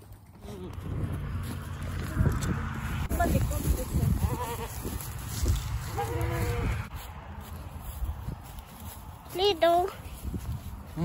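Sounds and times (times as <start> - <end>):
goat bleating: 4.1 - 5.0, 5.9 - 6.9.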